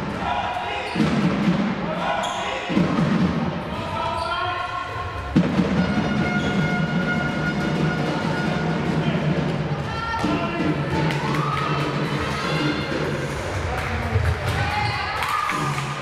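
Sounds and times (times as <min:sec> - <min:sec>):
music: 0:01.0 - 0:03.8, 0:05.0 - 0:16.0.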